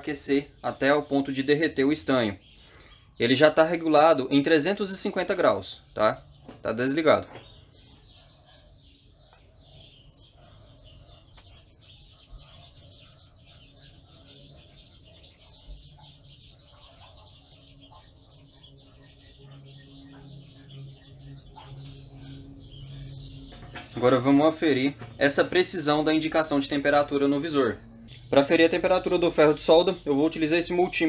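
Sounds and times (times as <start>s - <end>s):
birds calling: 0.0s - 31.0s
low repeated bird call: 0.0s - 31.0s.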